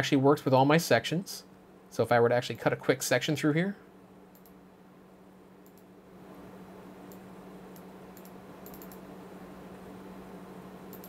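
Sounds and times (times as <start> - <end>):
low hum and hiss: 0.0 - 11.0
mouse and keyboard clicks: 8.2 - 9.0.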